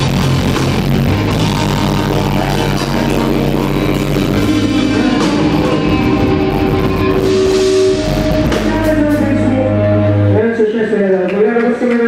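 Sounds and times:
drums: 0.0s - 10.7s
live rock band: 0.0s - 11.0s
distorted electric guitars: 0.0s - 11.3s.

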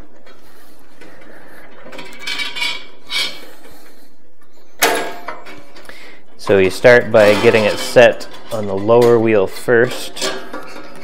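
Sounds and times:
saw blade scraping on metal: 2.0s - 3.8s, 6.4s - 11.0s
sharp metallic clack: 4.8s - 5.6s.

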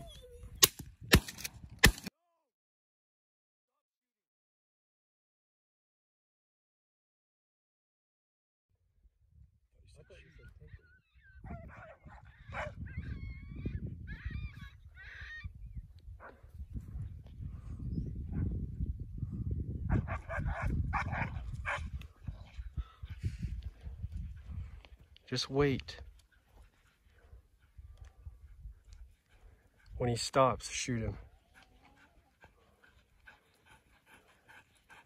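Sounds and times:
distant dogs barking and yelping: 0.0s - 0.7s, 9.9s - 18.8s, 19.8s - 25.1s, 26.0s - 35.0s
wind rumble on microphone: 9.0s - 25.2s, 27.2s - 30.1s.

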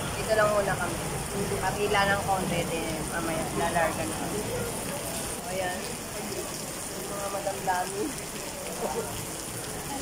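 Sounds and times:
heavy rain: 0.0s - 10.0s
faint voices: 0.1s - 10.0s.

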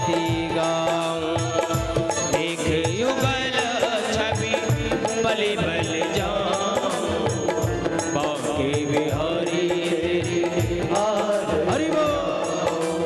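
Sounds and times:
drum beat: 0.0s - 13.0s
man singing devotional song: 0.0s - 13.0s.

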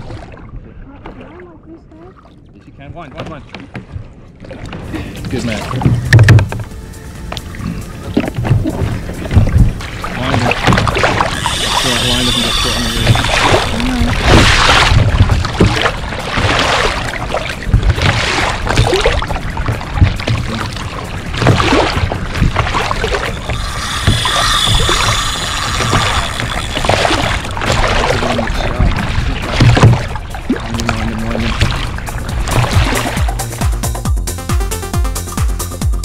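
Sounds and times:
water splashing along kayak hull: 0.0s - 34.1s
electronic music with steady beat: 22.6s - 27.2s, 32.0s - 36.0s.

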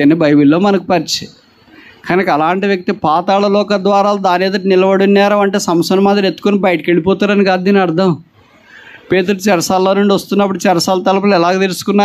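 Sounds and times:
man speaking into a microphone: 0.0s - 8.4s, 9.0s - 12.0s.

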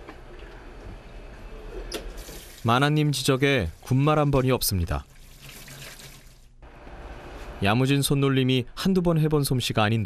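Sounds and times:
dish rinsed by hand: 2.2s - 6.5s.

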